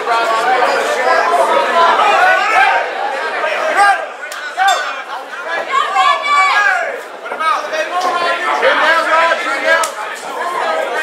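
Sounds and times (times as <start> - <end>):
crowd chattering and calling out: 0.0 - 11.0.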